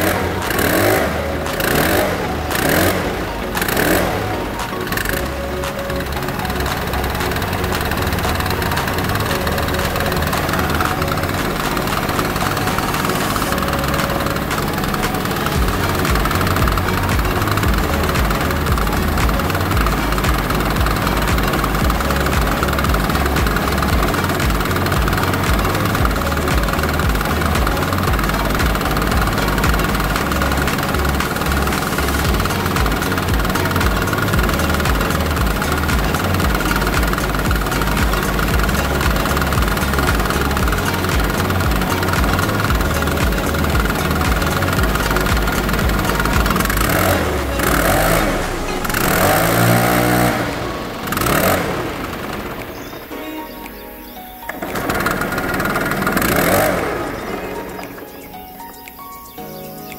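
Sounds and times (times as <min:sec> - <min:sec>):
leaf blower engine revving: 0:00.0 - 0:53.2, 0:54.5 - 0:58.0.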